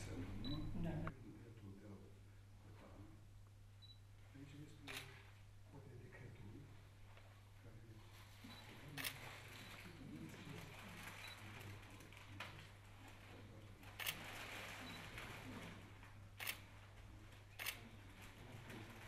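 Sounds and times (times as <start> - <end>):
low steady hum: 0.0 - 19.0
camera shutters clicking: 4.9 - 5.1, 16.4 - 16.6, 17.6 - 17.8.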